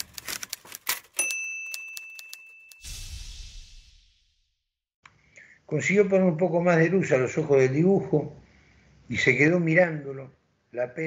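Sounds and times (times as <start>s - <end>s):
sharp typewriter-like clicks: 0.0s - 2.8s
bright bell ding: 1.2s - 3.2s
rising whoosh: 2.8s - 4.6s.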